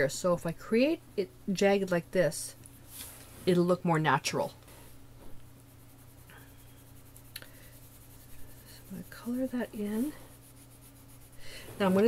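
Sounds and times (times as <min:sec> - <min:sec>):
pencil scratching on paper: 0:05.6 - 0:12.0.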